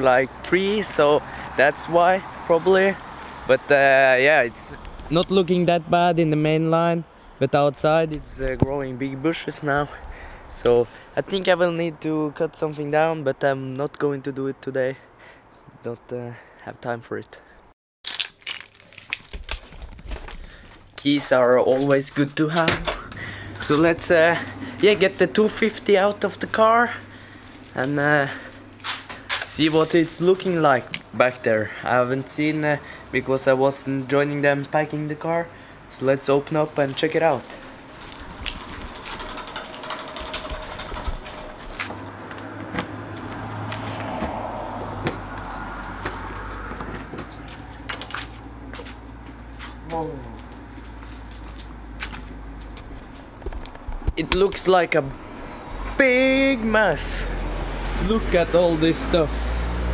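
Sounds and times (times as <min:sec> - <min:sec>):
keys clinking and rattling: 0:18.0 - 0:20.3, 0:37.9 - 0:41.9, 0:51.0 - 0:53.0
footsteps: 0:27.0 - 0:31.1, 0:43.2 - 0:54.2.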